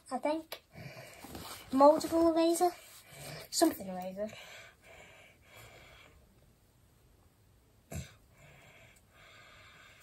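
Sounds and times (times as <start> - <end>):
quiet breathing: 0.6 - 6.6, 7.8 - 10.0.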